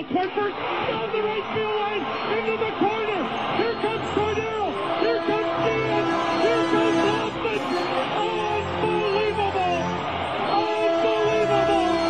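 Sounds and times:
music with sung melody: 0:01.3 - 0:12.0.

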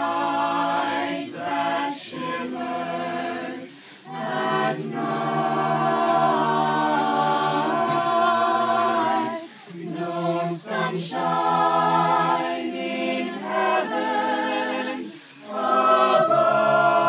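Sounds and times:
group singing a cappella: 0:00.0 - 0:17.0.

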